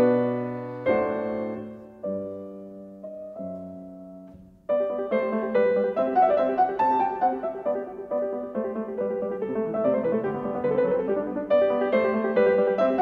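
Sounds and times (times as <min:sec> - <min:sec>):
gentle piano music: 0:00.0 - 0:13.0.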